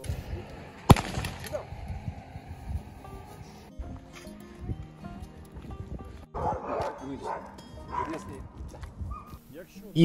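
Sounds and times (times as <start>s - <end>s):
dog barking: 6.3s - 8.3s, 9.1s - 9.4s.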